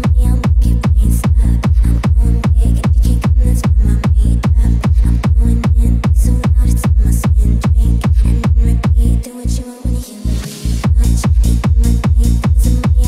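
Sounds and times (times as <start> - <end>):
kick drums: 0.0 - 9.1, 10.8 - 13.0
heavy bass line: 0.0 - 13.0.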